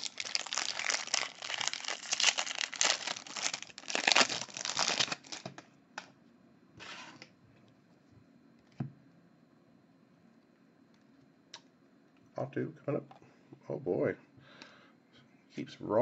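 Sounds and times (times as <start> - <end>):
foil wrapper crinkling and tearing: 0.0 - 5.6.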